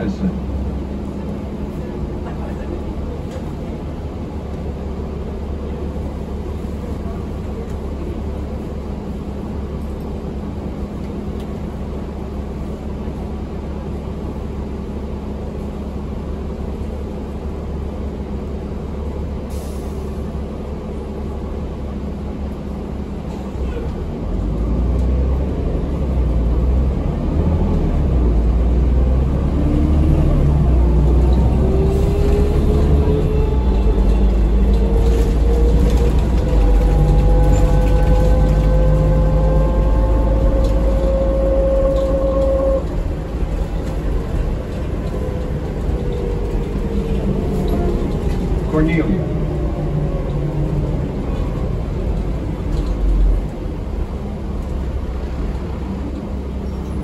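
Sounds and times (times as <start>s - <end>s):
bus engine humming: 0.0s - 57.0s.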